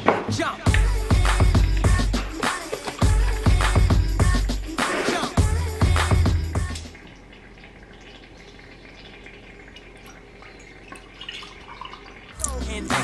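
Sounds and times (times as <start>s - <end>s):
background music: 0.0s - 6.9s, 12.4s - 13.0s
liquid trickling: 0.7s - 13.0s.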